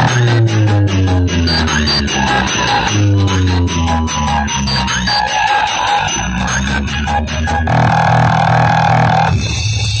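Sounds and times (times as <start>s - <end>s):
droning mid tone: 0.0s - 9.6s
pulsing bass: 0.0s - 10.0s.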